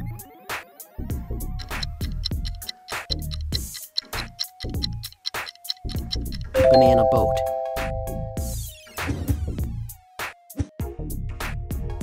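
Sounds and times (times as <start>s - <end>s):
background music beat: 0.5s - 12.0s
electronic bell chime: 6.6s - 8.5s.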